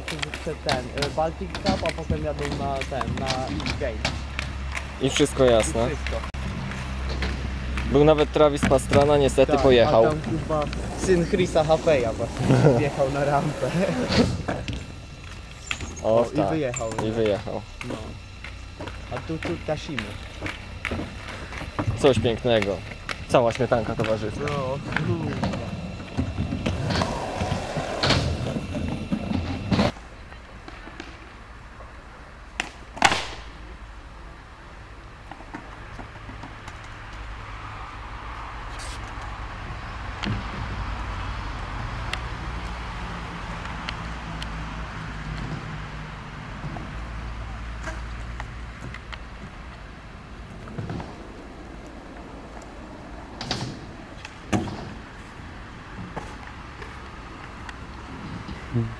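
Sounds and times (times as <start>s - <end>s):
skateboards clacking on concrete: 0.0s - 33.6s, 35.2s - 37.3s, 41.9s - 58.9s
low outdoor rumble: 0.0s - 58.9s
voices: 0.0s - 58.9s.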